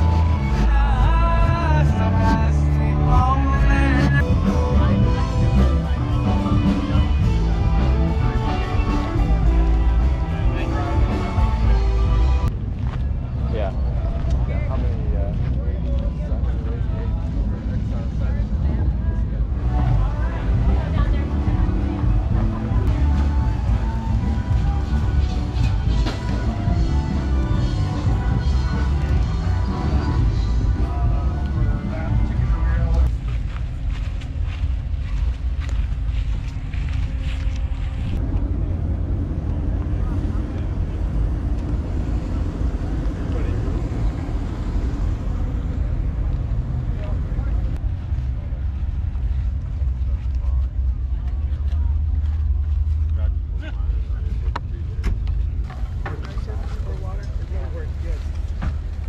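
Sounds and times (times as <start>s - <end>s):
background music: 0.0s - 14.2s, 16.3s - 33.1s
people's voices: 0.0s - 59.0s
wind rumbling on microphone: 30.6s - 59.0s.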